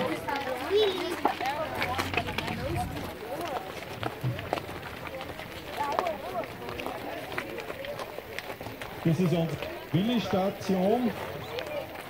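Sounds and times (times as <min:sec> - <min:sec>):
children chattering: 0:00.0 - 0:12.0
footsteps on dry dirt: 0:00.0 - 0:12.0.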